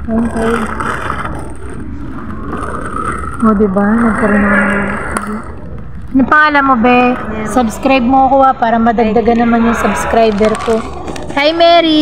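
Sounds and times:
airport terminal rumble: 0.0 - 12.0.

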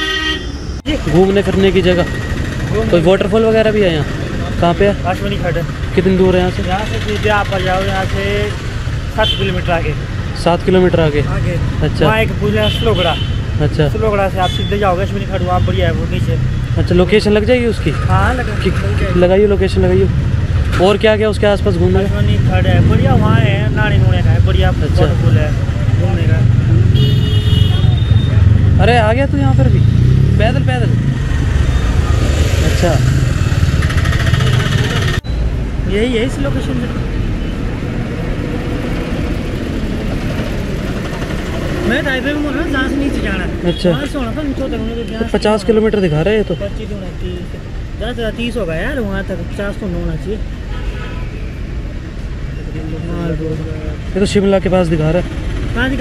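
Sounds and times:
street traffic rumble: 0.0 - 56.0.

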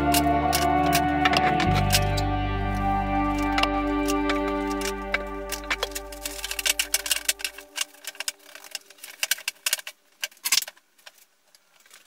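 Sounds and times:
wooden strips clacking together: 3.4 - 12.0.

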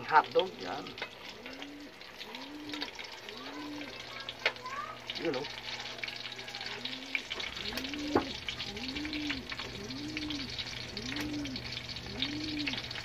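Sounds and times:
hotdogs sizzling in oil: 0.0 - 13.0.

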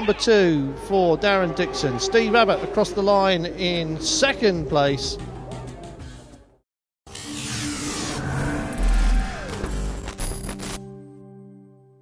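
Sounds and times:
race sound: 0.0 - 6.2.

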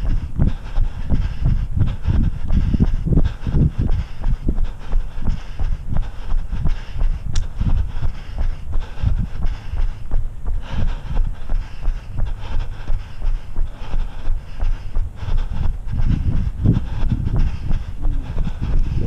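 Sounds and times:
running footsteps on pavement: 0.0 - 19.0
wind rumbling on microphone: 0.0 - 19.0.

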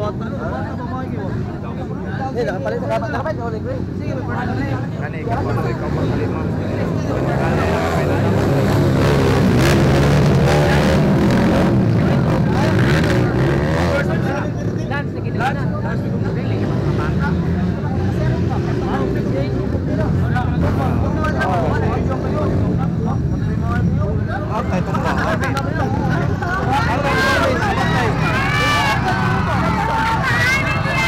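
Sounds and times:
dirt bikes revving past: 5.4 - 14.4.

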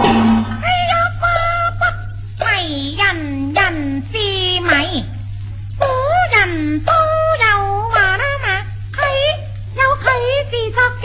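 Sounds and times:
low hum of old recording: 0.0 - 11.0.

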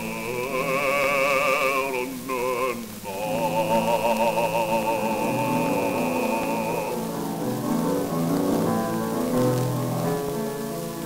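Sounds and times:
grand piano playing: 0.0 - 11.0
record surface hiss and crackle: 0.0 - 11.0.

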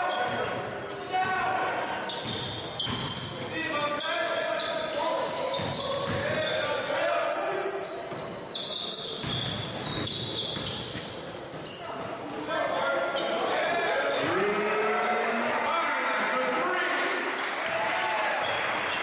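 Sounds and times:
sneaker squeaks: 0.0 - 14.4.

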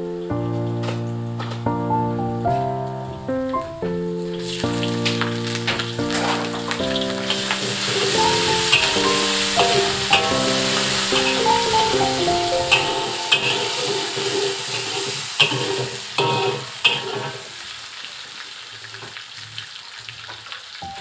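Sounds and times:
background music: 0.0 - 15.5
sizzling in hot oil: 4.1 - 21.0
metal spatula scraping wok: 4.4 - 17.5.

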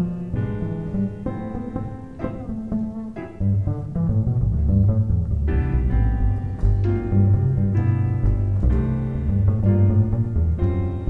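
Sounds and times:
plucked bass line: 0.0 - 11.0
jazz band playing: 0.6 - 11.0.

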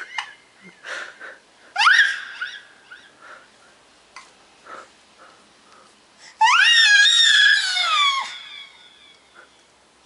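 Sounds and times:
baby squealing: 1.8 - 3.0, 6.4 - 9.4.

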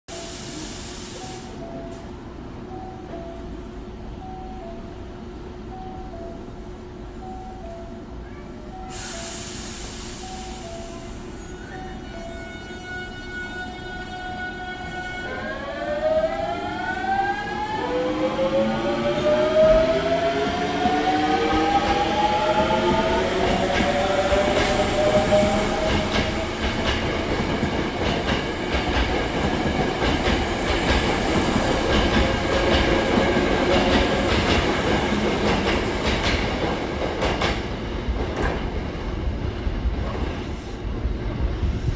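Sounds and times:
air hiss: 0.1 - 1.6, 8.9 - 11.2, 23.6 - 26.8
train wheels rumbling on rails: 15.2 - 41.9.

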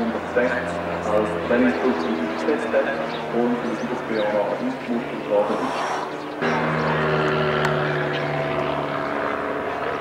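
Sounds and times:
propeller plane engine drone: 0.0 - 10.0.

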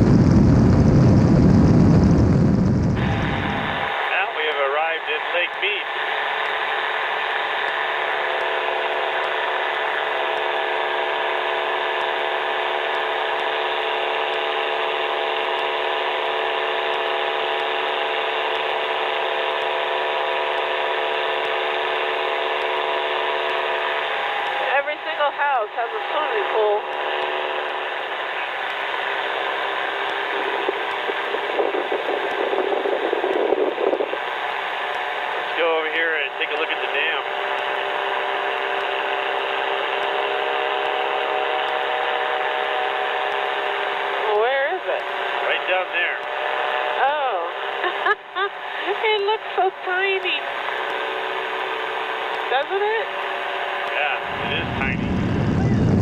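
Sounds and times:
aircraft engine and propeller drone: 0.0 - 56.0.

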